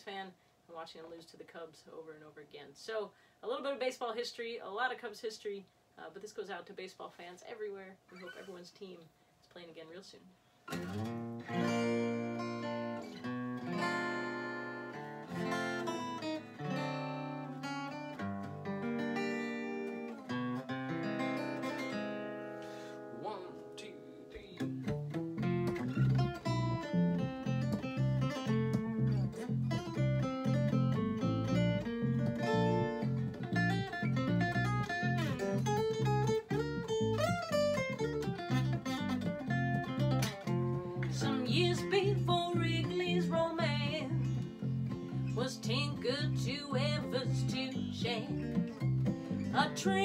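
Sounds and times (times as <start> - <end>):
acoustic guitar picking melody: 10.7 - 50.0
electric bass: 24.6 - 50.0.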